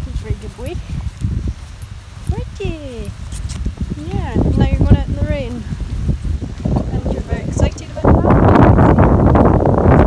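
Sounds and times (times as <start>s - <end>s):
pony hoofbeats walking: 0.0s - 10.0s
wind rumbling on microphone: 0.0s - 10.0s.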